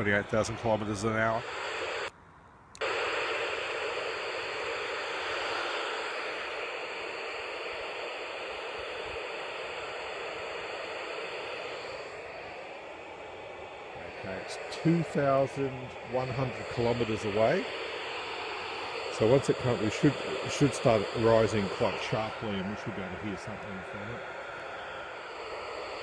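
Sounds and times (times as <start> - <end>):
radio receiver hiss: 0.0 - 2.2, 2.8 - 26.0.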